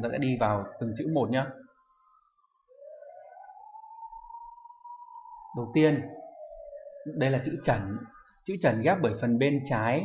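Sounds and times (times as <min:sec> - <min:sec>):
rising electronic tone: 0:00.0 - 0:10.0.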